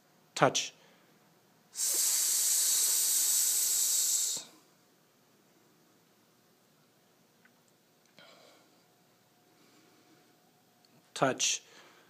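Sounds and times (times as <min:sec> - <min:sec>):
person holding a hissing s sound: 0:01.7 - 0:04.6.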